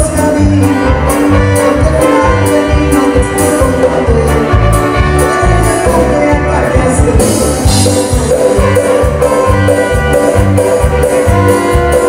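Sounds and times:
live band playing ranchera: 0.0s - 12.0s.

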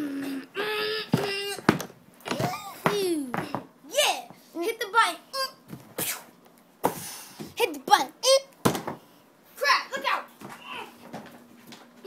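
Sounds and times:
child humming: 0.0s - 1.6s, 2.4s - 3.5s.

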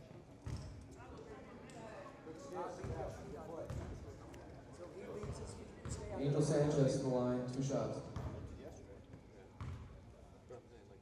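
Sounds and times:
voices in a gym: 0.0s - 11.0s.

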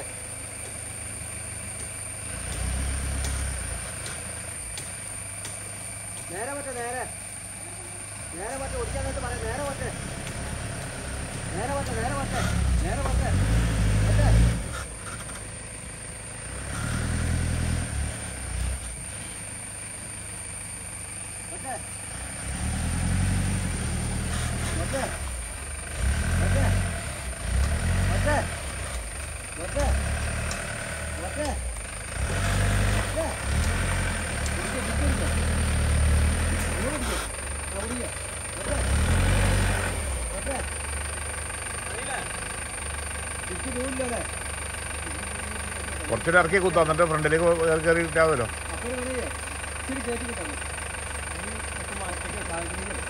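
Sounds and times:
diesel truck engine idling: 0.0s - 53.0s
faint ticks: 29.8s - 30.8s, 33.6s - 34.6s.

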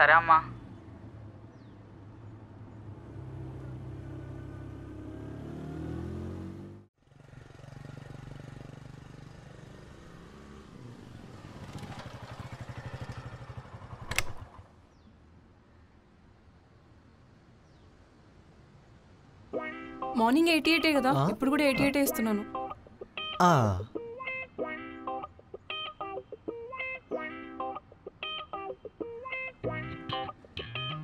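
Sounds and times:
motorcycle engine running: 4.0s - 14.7s.

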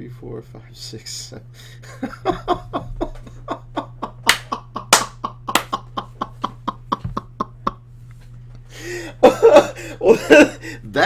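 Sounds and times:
low electrical hum: 0.0s - 11.0s
man laughing hard: 1.8s - 7.8s, 8.8s - 10.9s.

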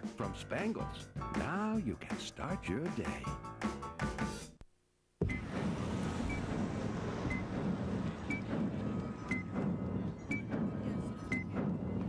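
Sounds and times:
low rumbling score: 5.2s - 12.0s.

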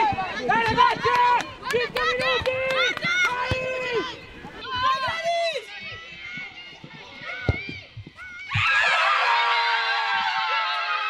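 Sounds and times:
crowd shouting encouragement: 0.0s - 11.0s.

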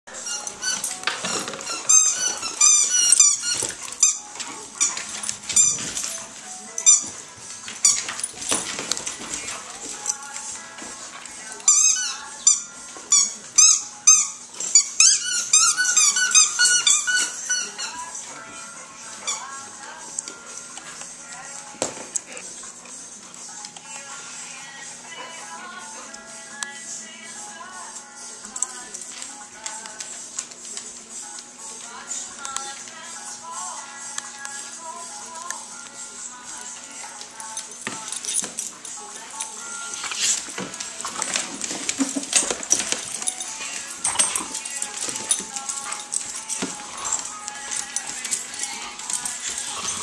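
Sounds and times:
dogs whining: 0.1s - 23.8s, 35.3s - 50.0s
background music: 0.1s - 50.0s.

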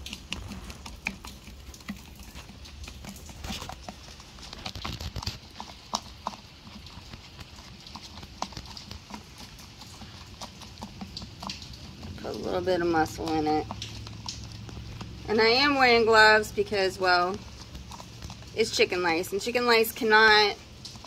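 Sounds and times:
handling clicks and rustles: 0.0s - 21.0s.

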